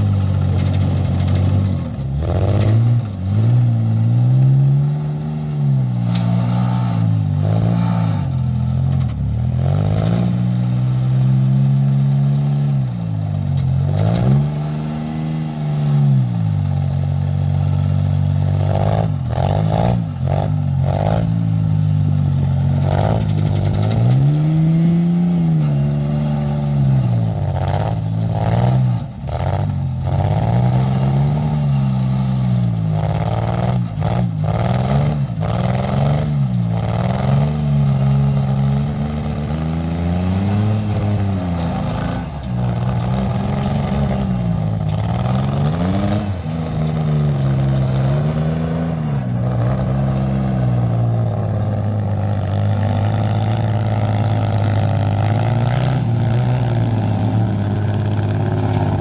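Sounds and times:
vehicle engine running: 0.0 - 59.0.

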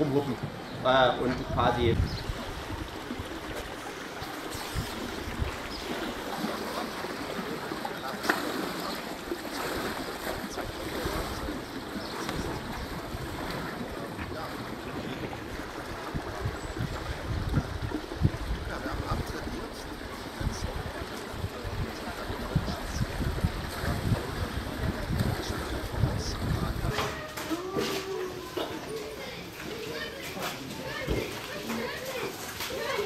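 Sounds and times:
water splashing and lapping: 0.0 - 33.0
wind rumbling on microphone: 0.4 - 6.6, 9.2 - 27.3.

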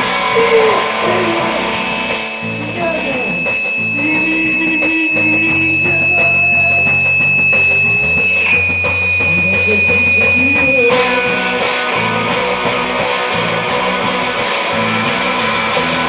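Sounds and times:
steady high tone: 0.0 - 12.3
drums: 0.0 - 16.0
electric guitar: 0.0 - 16.0.

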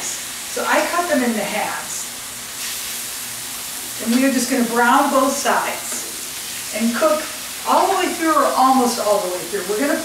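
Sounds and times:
chicken sizzling in frying pan: 0.0 - 10.0.

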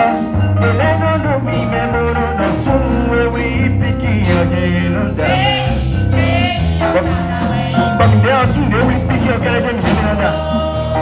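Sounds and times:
low bass notes: 0.0 - 11.0
percussion hits: 0.0 - 11.0
church choir singing: 5.1 - 8.5, 9.4 - 11.0.

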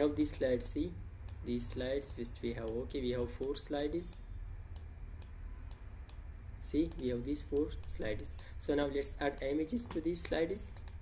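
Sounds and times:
steady low hum: 0.0 - 11.0
computer mouse clicks: 2.6 - 6.2, 6.9 - 8.5, 9.2 - 11.0.

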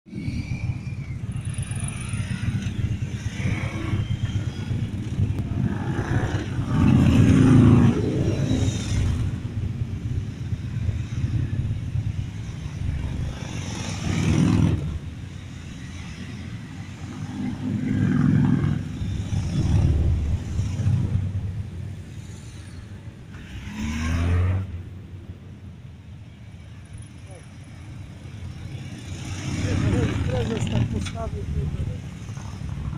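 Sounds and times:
motorcycle engines rumbling: 0.1 - 32.9.

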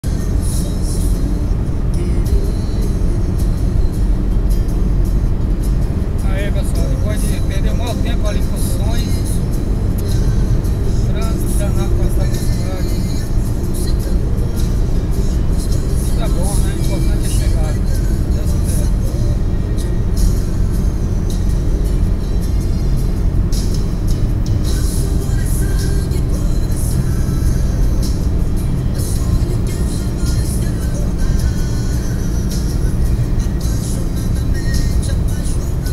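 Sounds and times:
car road and wind noise: 0.0 - 35.9
music: 0.0 - 35.9.

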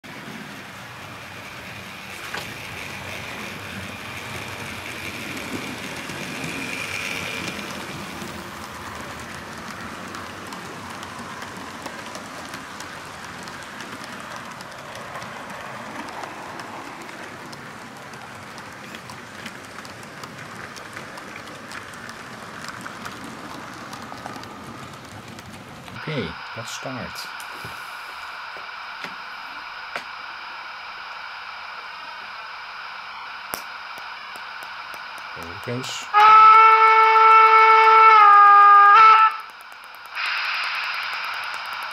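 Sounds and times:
model train wheels rumbling on rails: 0.0 - 41.9.

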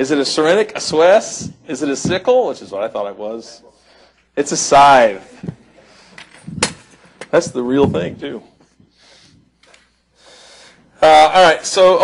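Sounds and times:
faint breaths on a microphone: 3.6 - 4.4, 5.3 - 6.6, 7.8 - 11.0.

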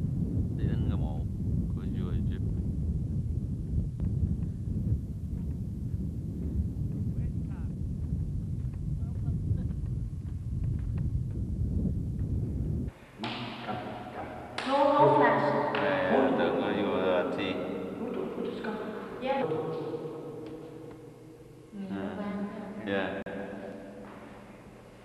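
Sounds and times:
wind buffeting microphone: 0.0 - 18.4
person speaking: 13.2 - 20.0.

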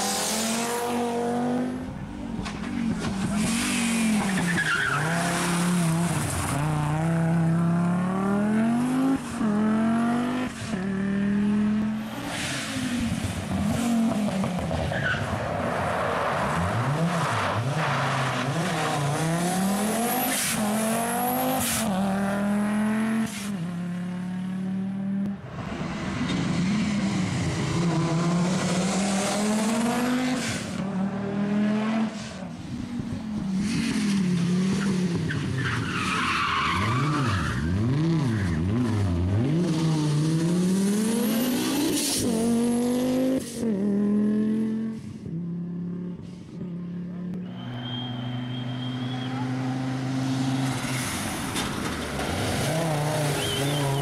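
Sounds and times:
rally car engine revving: 0.0 - 15.3, 16.4 - 46.1, 47.4 - 54.0
tyre squeal on tarmac: 3.3 - 5.6, 14.8 - 15.3, 34.8 - 38.6, 47.4 - 49.6, 53.1 - 54.0.

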